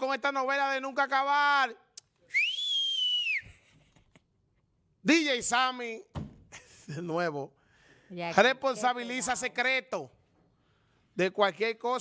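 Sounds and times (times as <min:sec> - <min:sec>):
man whistling: 0:02.2 - 0:03.7.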